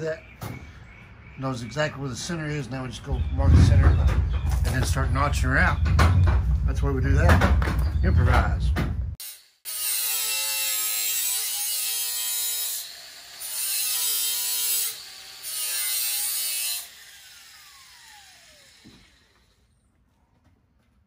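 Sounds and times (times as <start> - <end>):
grinder cutting steel: 9.2 - 19.7
grinder motor winding down: 16.9 - 19.6.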